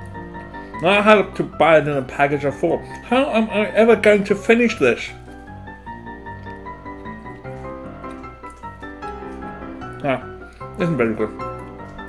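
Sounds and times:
background music melody: 0.0 - 12.0.

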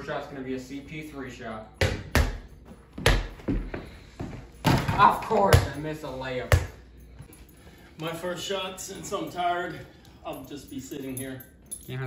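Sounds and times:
basketball dribbling thuds: 1.8 - 5.8, 6.5 - 6.8.

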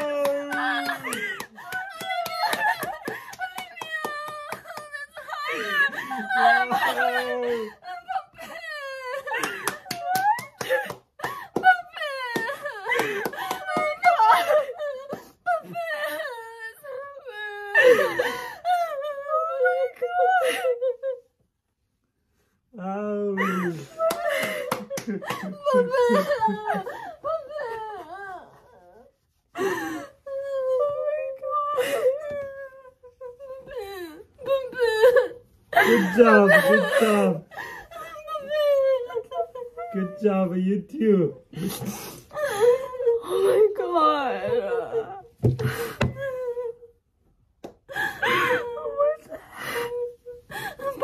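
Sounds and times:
scattered hand claps: 0.0 - 4.9, 9.4 - 11.7, 12.3 - 14.0, 24.1 - 25.5
women wailing with joy: 0.0 - 20.9, 23.4 - 28.4
people sobbing: 0.0 - 21.3, 23.0 - 40.2, 41.5 - 47.0, 47.9 - 51.0.

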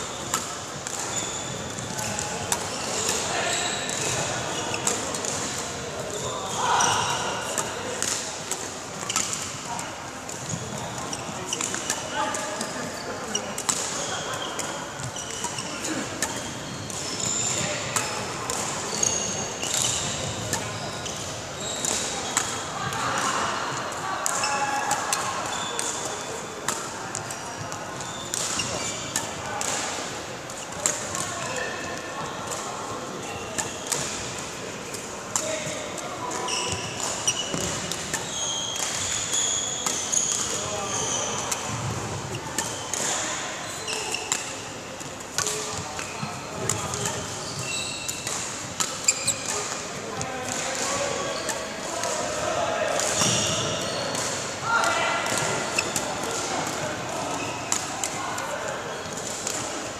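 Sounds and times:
murmur of voices: 0.0 - 59.9
badminton rackets striking shuttlecocks: 0.2 - 5.8, 6.8 - 9.6, 10.3 - 23.4, 24.2 - 27.3, 27.9 - 31.6, 32.5 - 47.4, 48.0 - 52.4, 53.0 - 54.5, 55.2 - 56.8, 57.6 - 58.2.

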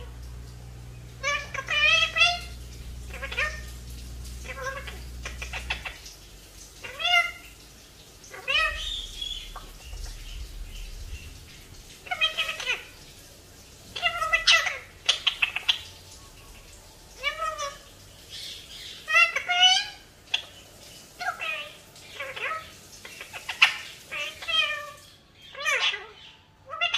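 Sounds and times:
low background hum: 0.0 - 26.9
parakeet high-pitched calls: 0.0 - 26.9.

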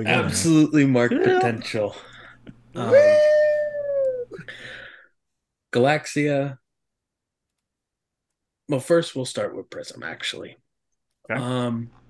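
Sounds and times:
person whooping: 2.8 - 4.4.

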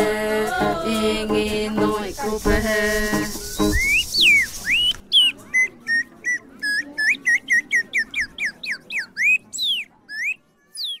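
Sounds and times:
high whistled notes sliding: 2.1 - 5.3.

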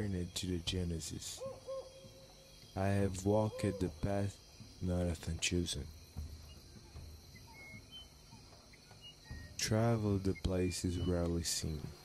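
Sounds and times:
faint forest ambience: 0.0 - 12.0
high bird chirps: 6.4 - 11.7.

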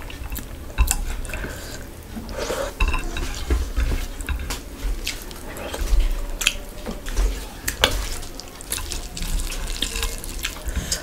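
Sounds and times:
chewing food: 0.0 - 11.0.

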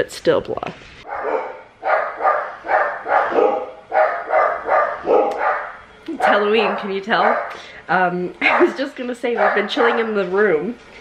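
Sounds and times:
dog barking: 1.0 - 7.6, 8.4 - 10.6.

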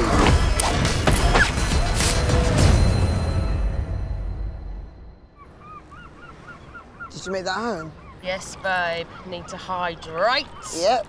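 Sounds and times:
bird calling: 5.4 - 11.0.

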